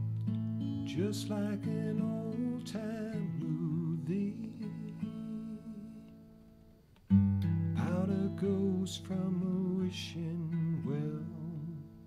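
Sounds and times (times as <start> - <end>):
acoustic guitar strumming: 0.0 - 12.0
man singing: 0.8 - 6.2, 7.8 - 12.0.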